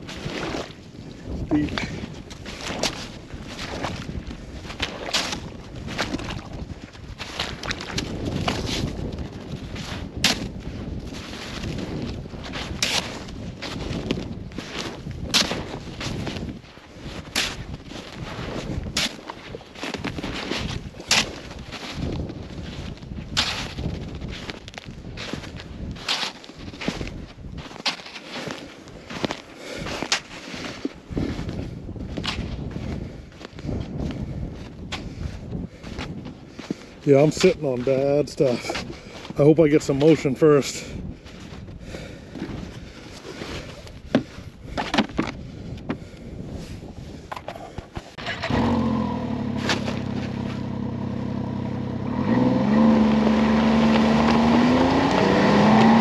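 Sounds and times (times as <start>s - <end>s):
boots crunching through snow: 0.0s - 33.6s, 49.4s - 51.6s, 52.9s - 56.0s.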